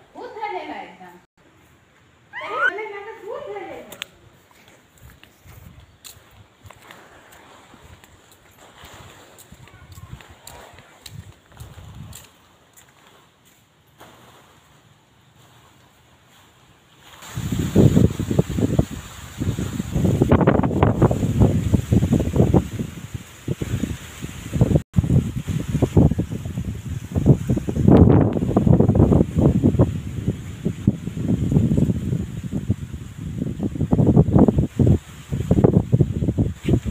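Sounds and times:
wind buffeting microphone: 0:04.2 - 0:12.4, 0:17.2 - 0:36.9.

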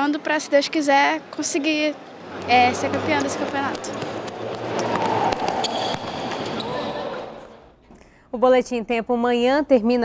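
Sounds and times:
running footsteps: 0:02.4 - 0:06.9.

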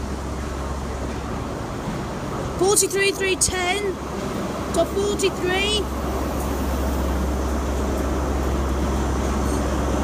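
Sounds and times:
diesel engine low drone: 0:00.0 - 0:10.0
train rolling past: 0:00.0 - 0:10.0.

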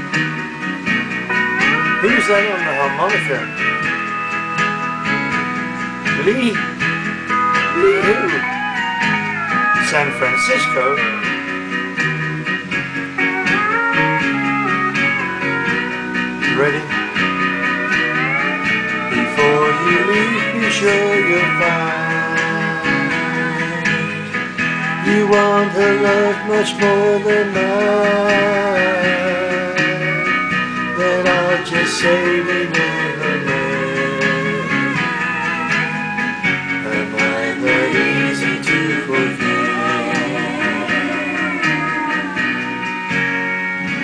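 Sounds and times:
country instrumental music: 0:00.0 - 0:44.0.

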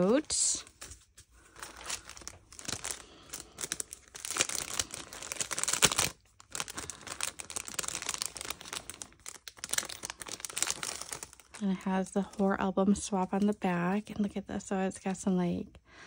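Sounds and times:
cellophane bags crinkling: 0:00.0 - 0:14.1.

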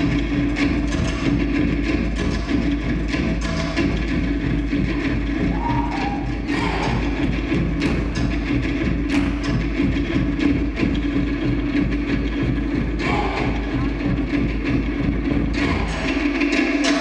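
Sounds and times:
music with percussion: 0:00.0 - 0:17.0.

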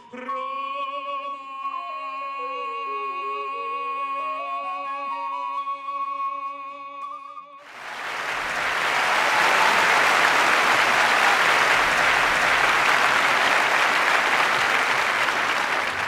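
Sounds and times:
audience applauding: 0:07.7 - 0:16.0.

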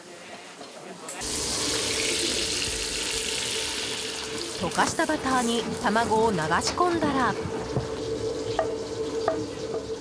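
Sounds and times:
egg sizzling in a frying pan: 0:01.2 - 0:10.0.

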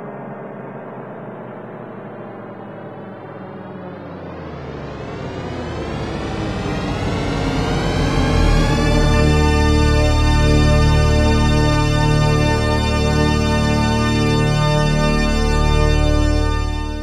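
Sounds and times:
ambient droning chord: 0:00.0 - 0:17.0
deep bass: 0:04.0 - 0:17.0.

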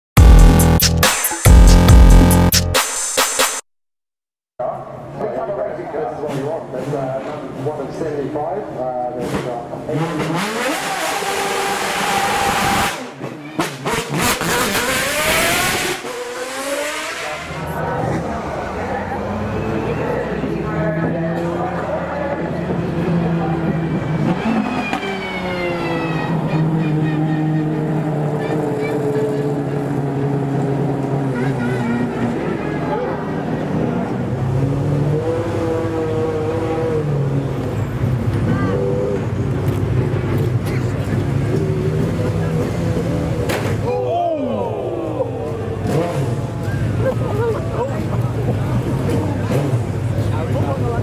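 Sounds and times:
people talking: 0:04.6 - 0:10.4, 0:17.2 - 0:24.0, 0:25.2 - 0:30.2, 0:31.0 - 0:34.3, 0:38.4 - 0:39.2, 0:40.2 - 0:43.2, 0:43.8 - 0:51.0.

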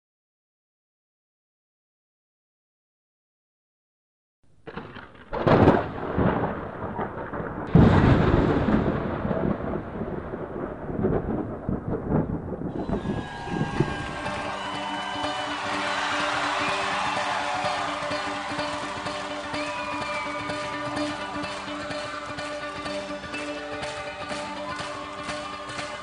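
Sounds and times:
thunder rumbling: 0:04.6 - 0:14.7
loud thunder claps: 0:04.7 - 0:16.3
music with long held chords: 0:12.9 - 0:26.0.

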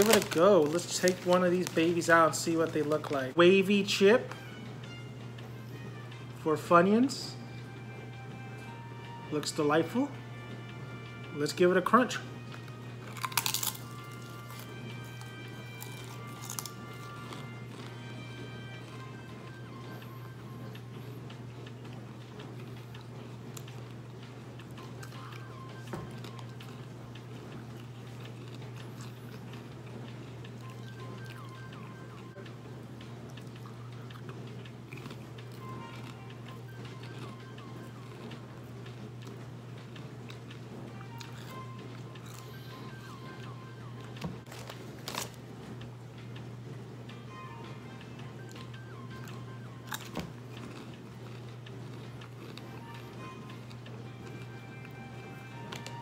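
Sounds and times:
soft background music: 0:00.0 - 0:56.0
steady low hum: 0:00.0 - 0:56.0
crunchy bite into potato chip: 0:13.1 - 0:14.6.

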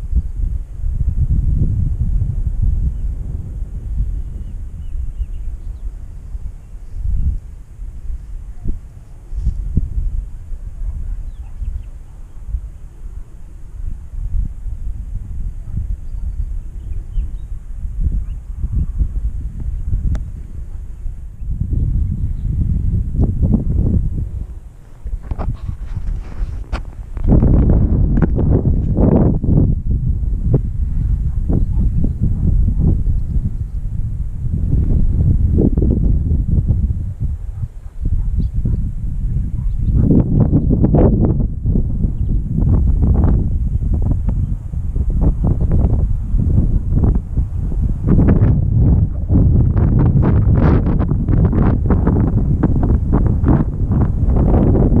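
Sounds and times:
wind rumbling on microphone: 0:00.0 - 0:55.0.

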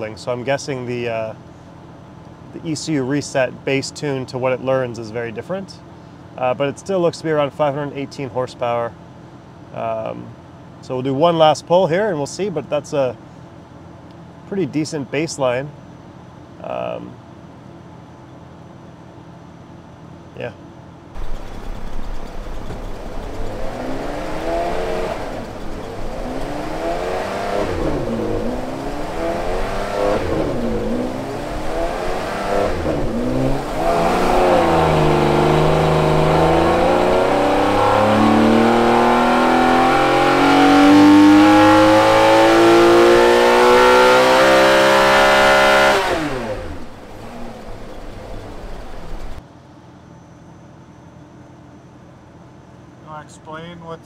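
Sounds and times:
car engine revving: 0:21.2 - 0:49.4.

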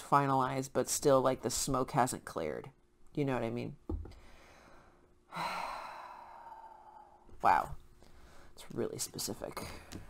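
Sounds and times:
person sighing: 0:05.3 - 0:07.3.

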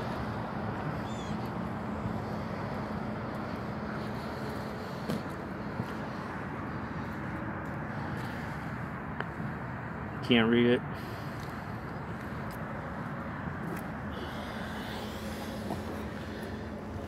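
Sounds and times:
low mechanical hum: 0:00.0 - 0:17.0
outdoor background noise: 0:00.0 - 0:17.0.

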